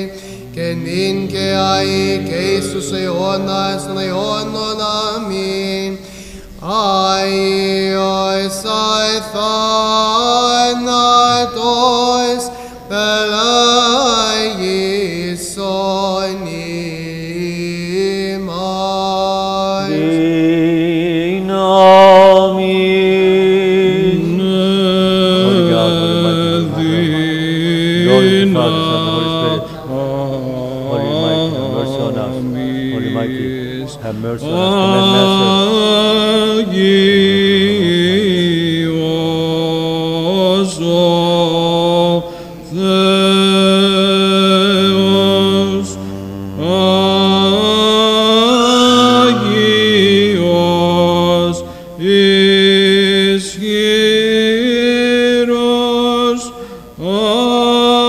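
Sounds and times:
men chanting liturgical chant: 0:00.0 - 0:06.0, 0:06.6 - 0:58.0.

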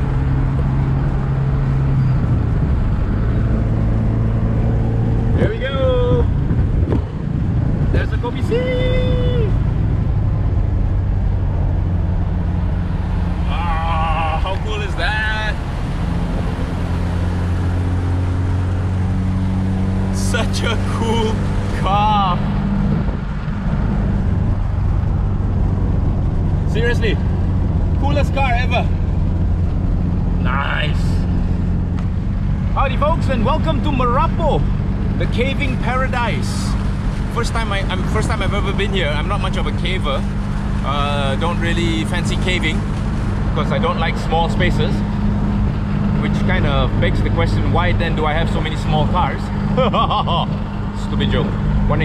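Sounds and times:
car engine cruising: 0:00.0 - 0:52.0
road noise: 0:00.0 - 0:52.0.

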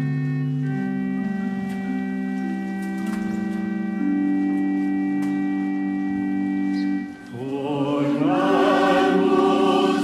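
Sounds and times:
church organ sustained chords: 0:00.0 - 0:10.0.

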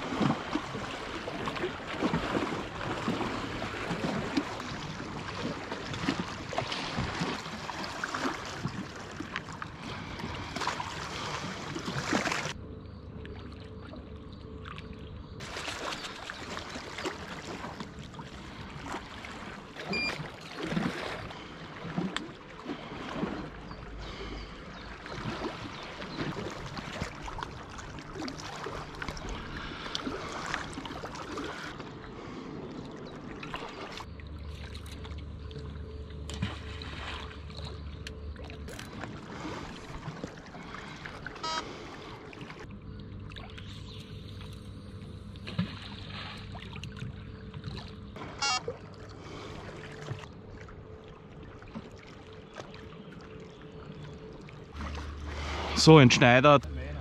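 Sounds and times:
river water lapping on rocks: 0:00.0 - 0:12.6, 0:14.6 - 0:35.6, 0:36.2 - 0:43.6, 0:45.4 - 0:57.0.

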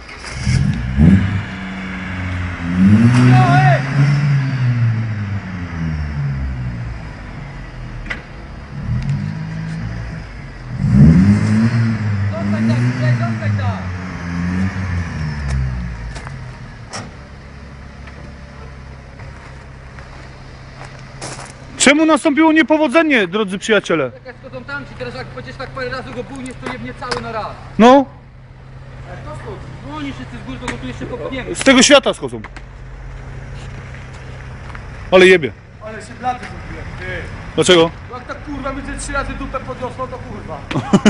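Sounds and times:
car engine idling: 0:00.0 - 0:41.0
car engine revving: 0:00.0 - 0:41.0.

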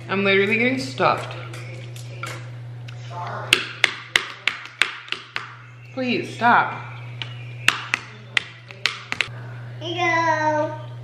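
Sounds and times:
chopsticks tapping plastic plate: 0:03.6 - 0:05.6, 0:07.2 - 0:09.3.

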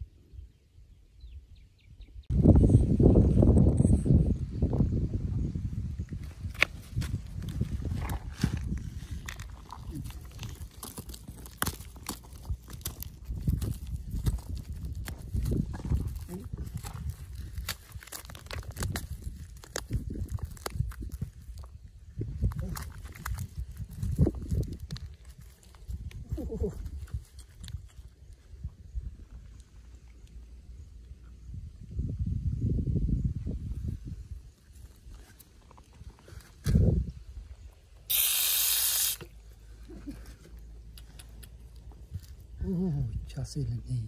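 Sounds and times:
pebbles and gravel clicking: 0:06.5 - 0:28.4.

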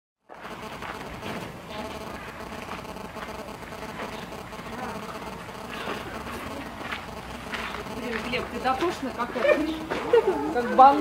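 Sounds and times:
faint outdoor hum: 0:00.3 - 0:11.0.

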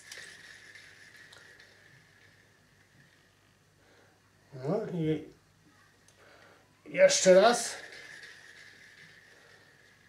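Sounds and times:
fishing reel whirring: 0:00.0 - 0:03.4, 0:06.9 - 0:10.0.

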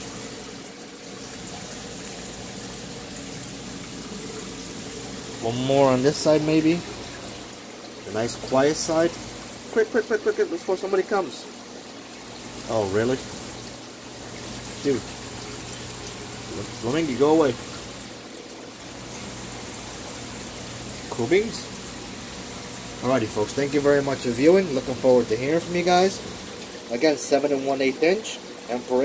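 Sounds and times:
aquarium water running: 0:00.0 - 0:29.0
low pump hum: 0:00.0 - 0:29.0.

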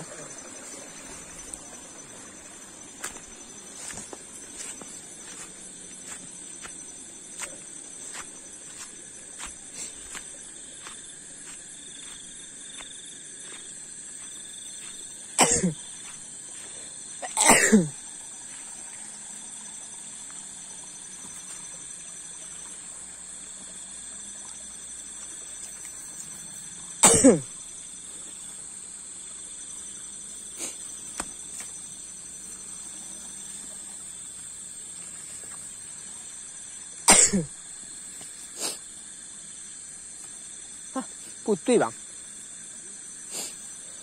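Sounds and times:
night insects droning: 0:00.0 - 0:44.0
man coughing: 0:15.4 - 0:15.8, 0:17.2 - 0:18.0, 0:27.0 - 0:27.5, 0:37.1 - 0:37.5.

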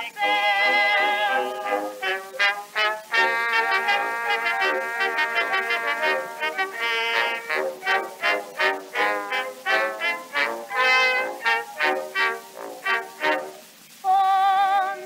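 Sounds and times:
small orchestra playing: 0:00.0 - 0:13.8.

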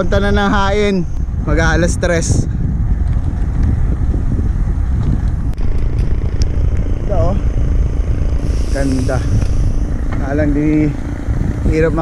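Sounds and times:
road noise: 0:00.0 - 0:12.0
wind buffeting microphone: 0:00.0 - 0:12.0.

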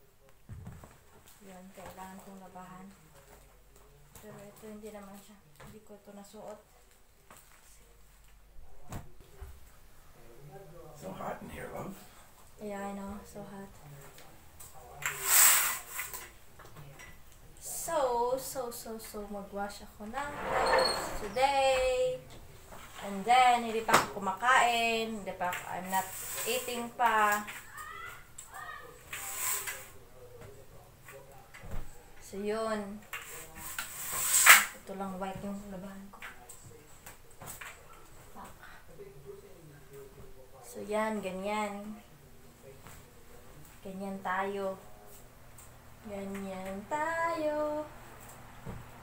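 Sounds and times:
fabric rustling whoosh: 0:20.1 - 0:22.0.

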